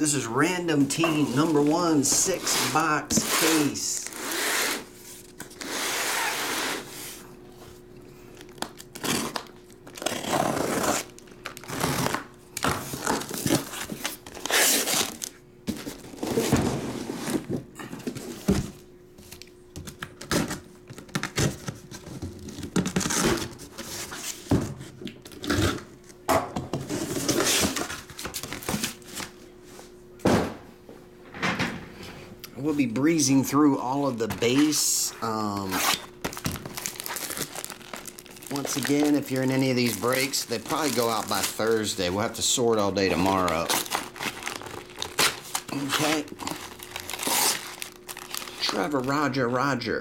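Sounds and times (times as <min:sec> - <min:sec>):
faint steady hum: 0:00.0 - 0:50.0
cardboard tearing and rustling: 0:00.8 - 0:07.2, 0:08.5 - 0:24.6, 0:26.9 - 0:29.3, 0:34.4 - 0:49.1
boxes thunking on table: 0:30.2 - 0:30.6.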